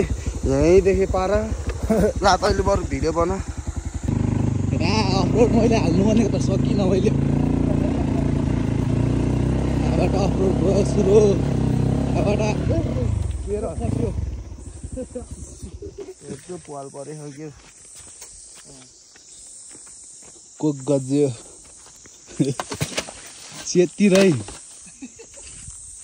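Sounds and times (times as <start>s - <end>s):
dirt bike engine running: 0.0s - 16.9s
voices: 0.0s - 17.8s, 18.5s - 19.0s, 20.6s - 21.6s, 23.5s - 25.5s.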